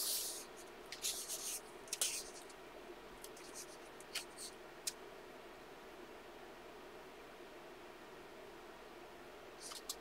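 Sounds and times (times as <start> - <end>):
paper rustling: 0.0 - 2.6
soft paper swishes: 0.0 - 2.6.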